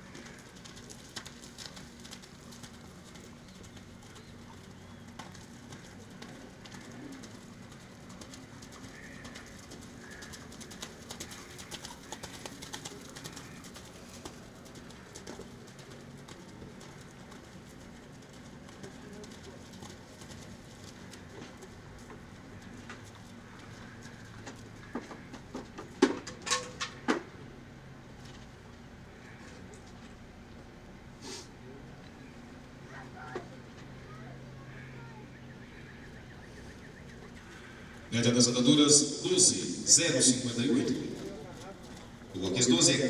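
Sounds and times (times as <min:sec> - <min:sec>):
hoofbeats in mud: 0:00.0 - 0:30.8, 0:34.6 - 0:43.0
outdoor background: 0:00.0 - 0:43.0.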